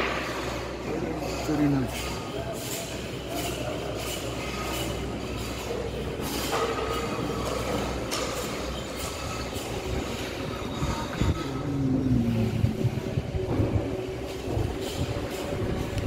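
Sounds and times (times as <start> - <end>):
metallic knocks and clatter: 0.0 - 11.7, 12.6 - 16.0
low hum: 8.5 - 16.0.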